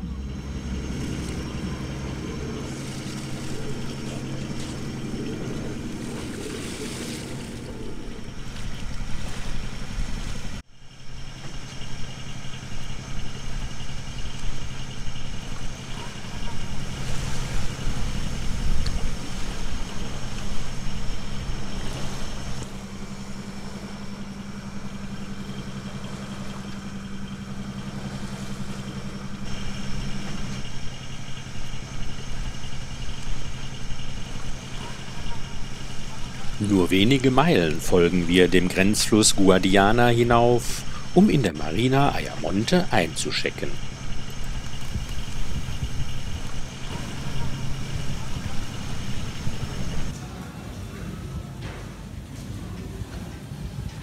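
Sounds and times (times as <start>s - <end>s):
wind and water rushing: 0.0s - 10.6s, 15.6s - 23.7s
boat engine running: 0.0s - 54.0s.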